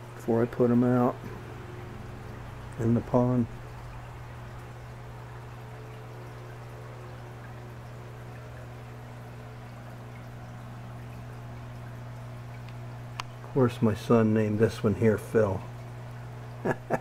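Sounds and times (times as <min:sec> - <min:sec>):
aquarium filter hum: 0:00.0 - 0:17.0
water trickling: 0:00.0 - 0:17.0.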